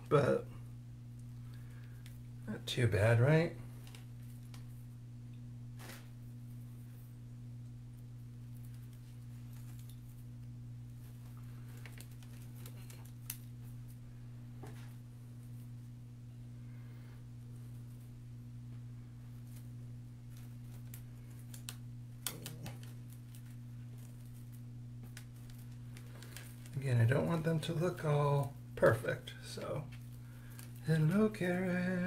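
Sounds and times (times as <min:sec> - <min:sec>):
low electrical hum: 0:00.0 - 0:32.0.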